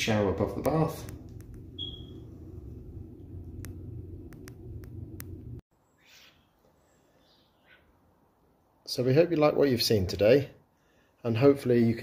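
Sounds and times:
low hum: 0:00.0 - 0:05.6
short high squeak: 0:01.8 - 0:02.2.

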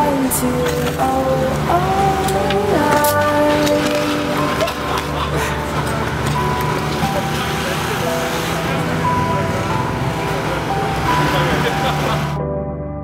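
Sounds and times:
voices: 0:00.0 - 0:12.4
music melody over bass line: 0:00.0 - 0:13.0.

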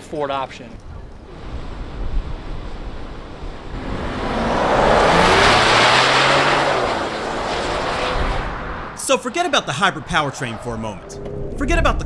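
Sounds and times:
car driving past: 0:03.3 - 0:09.0.

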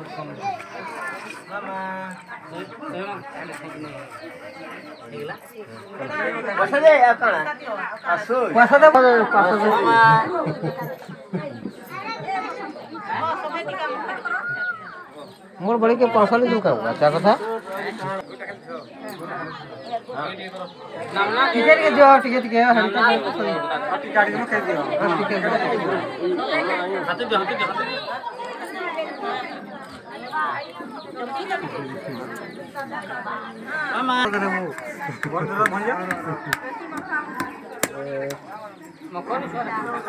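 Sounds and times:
chatter of people: 0:00.0 - 0:40.0.

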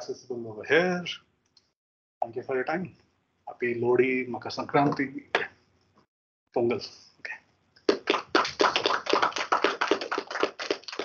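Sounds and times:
audience clapping: 0:07.9 - 0:11.0.

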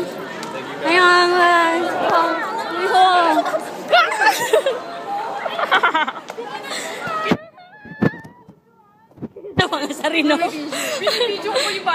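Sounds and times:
people talking and laughing: 0:00.0 - 0:11.9.

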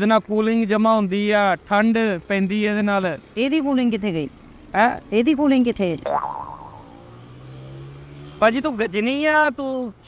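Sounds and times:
comic boing sliding downward: 0:06.0 - 0:07.2.

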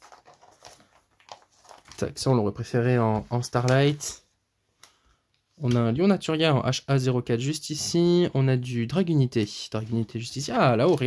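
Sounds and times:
plastic binder sleeves rustling: 0:00.0 - 0:04.2, 0:07.5 - 0:11.0.

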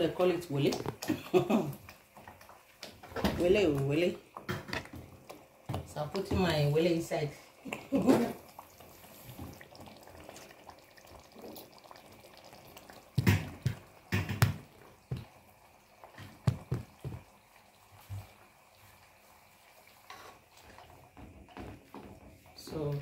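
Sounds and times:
stew bubbling in a pot: 0:00.0 - 0:23.0
knocks and thumps: 0:13.2 - 0:15.3, 0:16.2 - 0:17.3.

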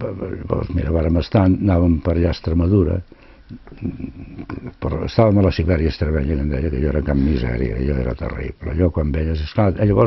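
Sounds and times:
man breathing softly: 0:03.1 - 0:03.7.

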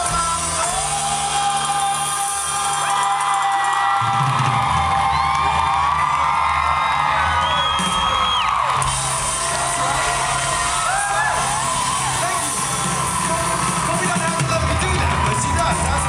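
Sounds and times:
crowd cheering and whooping: 0:00.0 - 0:16.0
live band music: 0:00.0 - 0:16.0.

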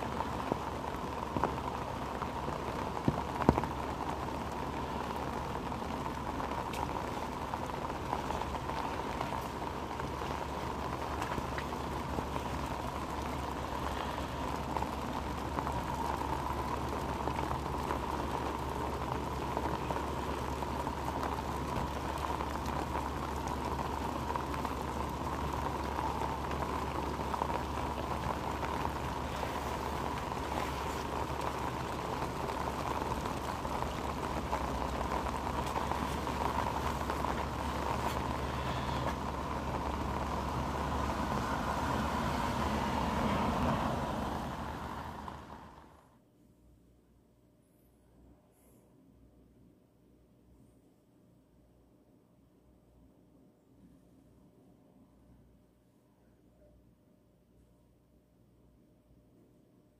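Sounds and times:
heavy rain falling: 0:00.0 - 0:46.1.

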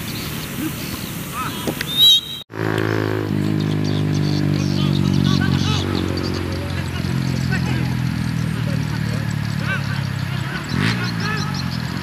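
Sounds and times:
distant voices: 0:00.0 - 0:12.0
outdoor field noise: 0:00.0 - 0:12.0
shrill whistle blast: 0:01.9 - 0:02.5.

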